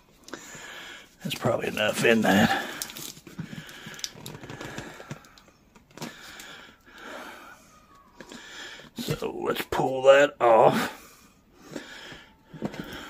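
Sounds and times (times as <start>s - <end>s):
squeeze bottle wet squelches: 1.2s - 6.4s.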